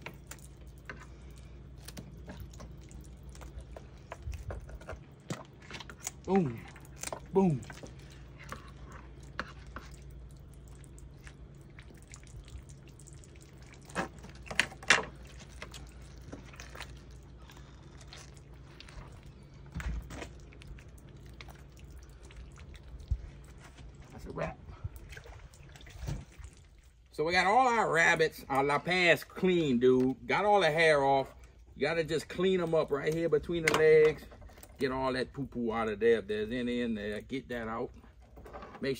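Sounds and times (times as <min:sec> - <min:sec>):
water dripping and splashing: 0:00.0 - 0:27.2.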